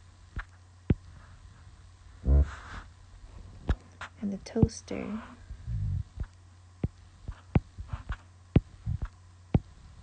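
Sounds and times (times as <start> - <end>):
low electrical hum: 0.0 - 10.0
stylus tapping on tablet screen: 6.2 - 9.7.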